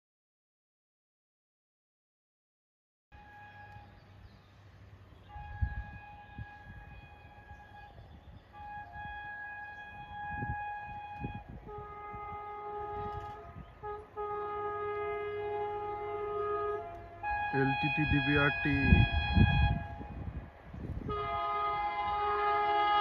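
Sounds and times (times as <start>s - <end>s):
electric locomotive horn blasts: 3.2s - 4.1s, 5.2s - 23.0s.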